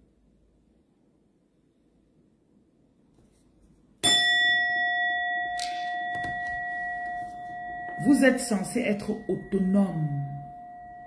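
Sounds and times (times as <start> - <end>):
bell-like metallic tone ringing: 4.0 - 11.0.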